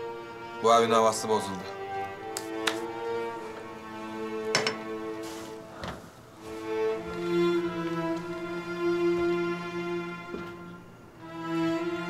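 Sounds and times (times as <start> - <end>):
bowed strings playing slow notes: 0.0 - 12.0.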